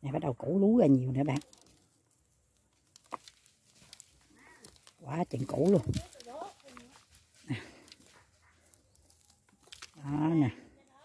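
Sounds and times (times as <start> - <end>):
soil crumbled by hand: 0.0 - 11.0.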